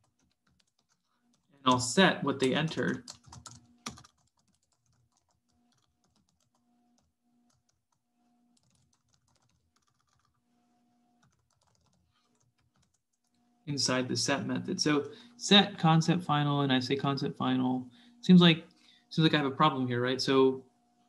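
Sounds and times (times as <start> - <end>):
keyboard typing clicks: 1.7 - 7.8, 8.6 - 10.3, 11.2 - 13.0.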